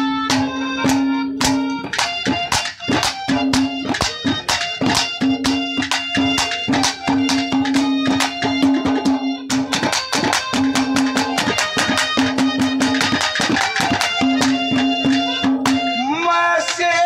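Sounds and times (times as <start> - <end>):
fast hand-drum beat: 0.0 - 17.0
held melody note: 0.0 - 17.0
man singing: 16.0 - 17.0.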